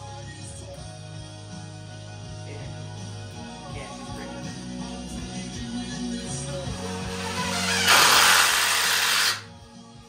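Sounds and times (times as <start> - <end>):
background music: 0.0 - 10.0
power drill running: 6.8 - 9.5.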